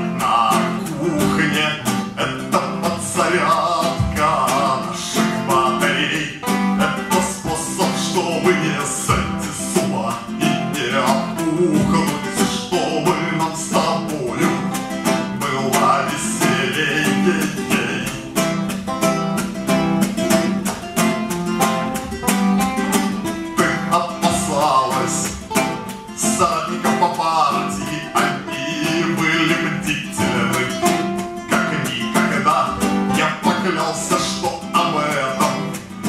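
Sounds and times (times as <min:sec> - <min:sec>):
man singing: 0:00.0 - 0:18.7, 0:23.1 - 0:36.0
strummed acoustic guitar: 0:00.0 - 0:36.0.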